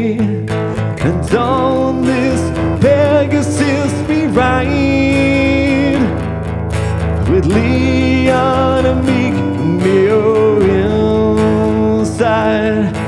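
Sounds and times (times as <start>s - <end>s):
acoustic guitar: 0.0s - 13.0s
person singing: 0.0s - 13.0s.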